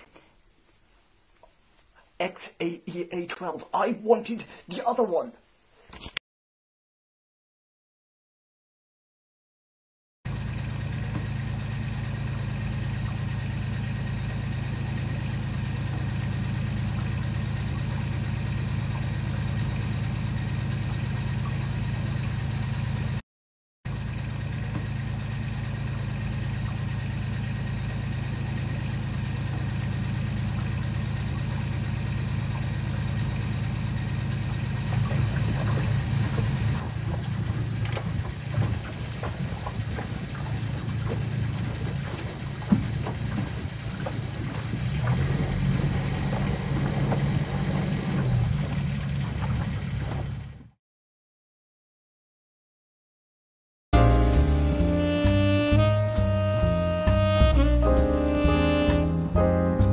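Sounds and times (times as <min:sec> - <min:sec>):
boat engine humming: 0:10.3 - 0:23.2, 0:23.9 - 0:50.8, 0:54.0 - 0:59.9.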